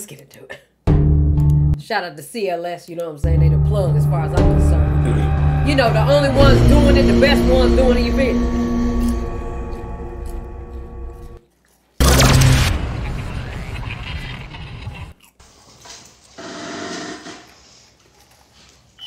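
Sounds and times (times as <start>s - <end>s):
held musical chord: 3.3s - 11.4s
swell of tones: 3.3s - 11.4s.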